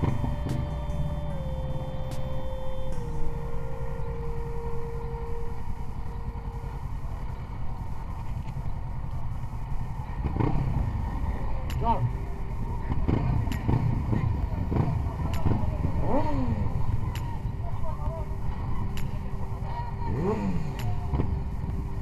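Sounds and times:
motorcycle engines rumbling: 0:00.0 - 0:22.0.

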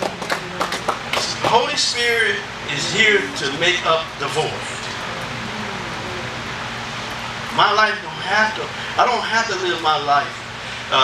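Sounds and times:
low hum: 0:00.0 - 0:09.0.

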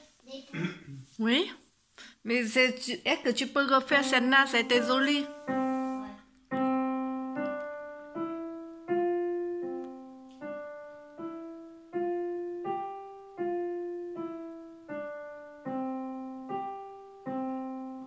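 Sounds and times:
digital piano slow melody: 0:03.9 - 0:18.0.

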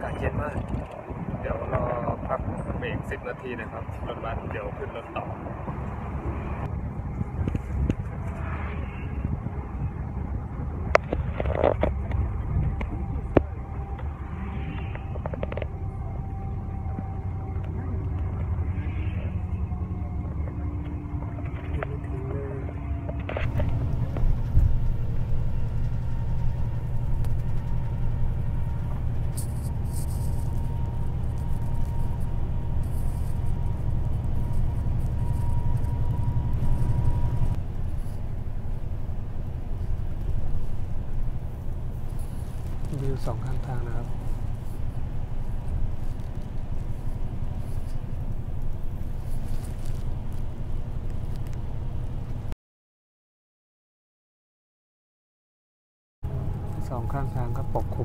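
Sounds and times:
bus rumble from inside: 0:00.0 - 0:52.6, 0:56.2 - 0:58.0.

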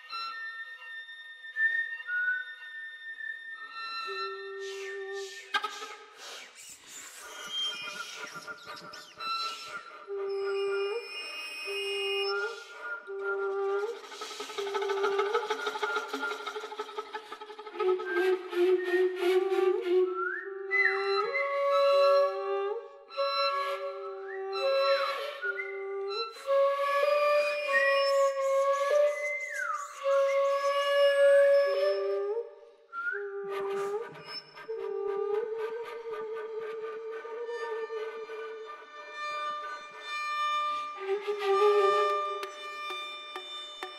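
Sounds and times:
chamber music with flute and violin: 0:00.0 - 0:43.9.

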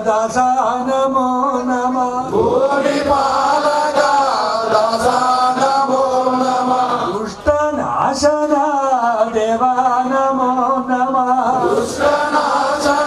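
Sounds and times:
man chanting into a microphone: 0:00.0 - 0:13.0.

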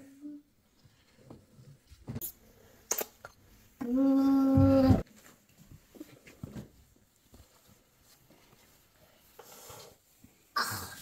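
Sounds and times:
fabric rustling: 0:04.7 - 0:10.2.

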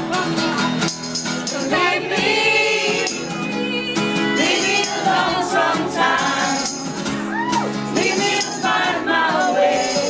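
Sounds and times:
strummed acoustic guitar: 0:00.0 - 0:10.0
voices singing: 0:01.4 - 0:10.0.

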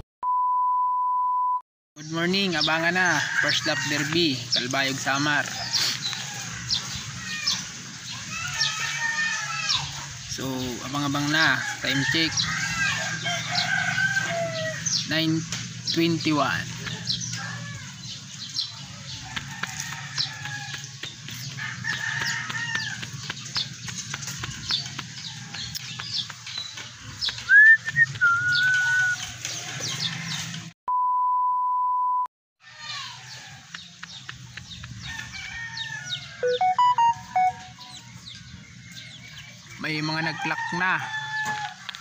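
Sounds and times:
electronic beep: 0:00.2 - 0:01.6, 0:30.9 - 0:32.3, 0:36.4 - 0:37.9
birds chirping: 0:02.0 - 0:30.7, 0:32.8 - 0:42.0
roosters crowing: 0:02.2 - 0:30.7, 0:32.6 - 0:42.0.

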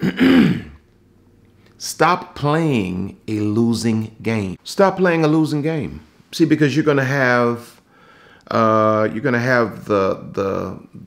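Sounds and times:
man clearing his throat: 0:00.0 - 0:00.8.

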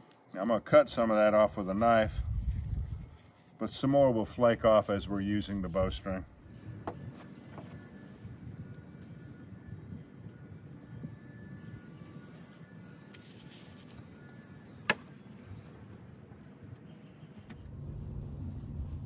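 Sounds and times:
low background rumble: 0:17.6 - 0:19.0.

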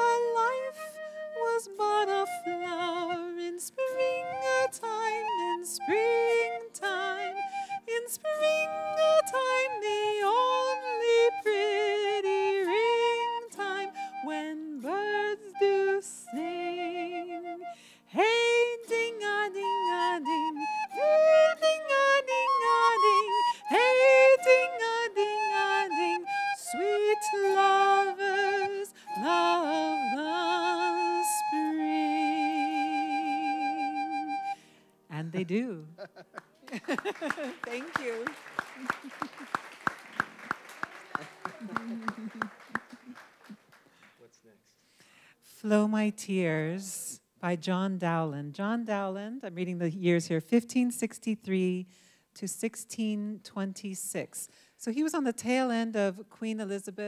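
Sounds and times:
woman singing: 0:00.0 - 0:34.3, 0:35.1 - 0:36.0, 0:45.6 - 0:57.0
autoharp: 0:00.0 - 0:35.7.

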